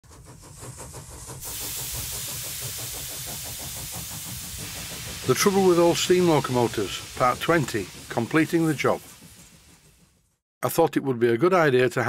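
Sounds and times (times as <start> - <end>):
steam engine running: 0.0 - 10.4
steam hissing: 0.0 - 10.4.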